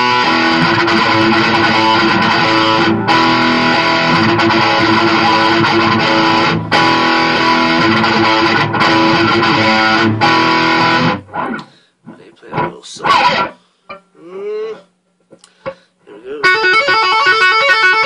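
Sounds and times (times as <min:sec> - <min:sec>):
electric guitar riff: 0:00.0 - 0:14.8, 0:15.5 - 0:18.0.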